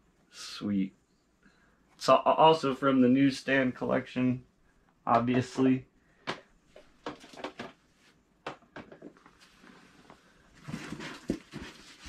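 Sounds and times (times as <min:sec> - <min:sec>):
hard plastic cases clacking: 0:07.0 - 0:07.8.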